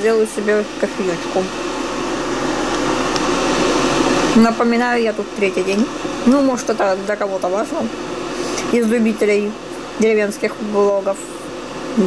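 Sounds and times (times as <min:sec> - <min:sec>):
electric kettle heating water: 0:00.0 - 0:12.0.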